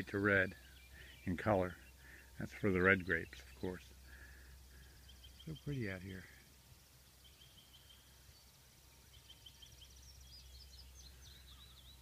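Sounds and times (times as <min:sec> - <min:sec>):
faint birdsong trills: 0:00.0 - 0:12.0.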